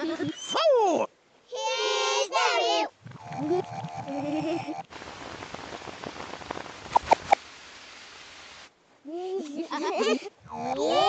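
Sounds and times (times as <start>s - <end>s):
cartoon rain hiss: 3.2s - 8.7s.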